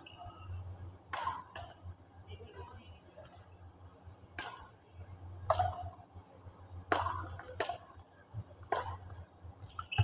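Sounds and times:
racket hitting shuttlecock: 0:01.1 - 0:01.9, 0:04.3 - 0:04.8, 0:05.4 - 0:06.0, 0:06.9 - 0:08.0, 0:08.6 - 0:10.0.

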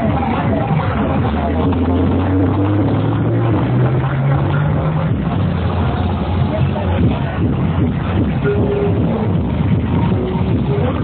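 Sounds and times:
electronic dance music with deep bass: 0:00.0 - 0:11.0.

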